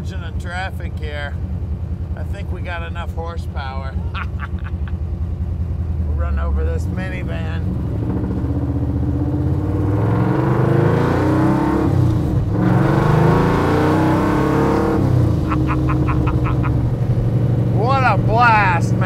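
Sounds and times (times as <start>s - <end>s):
car engine accelerating: 0.0s - 19.0s
person laughing: 4.0s - 5.0s, 15.4s - 16.9s.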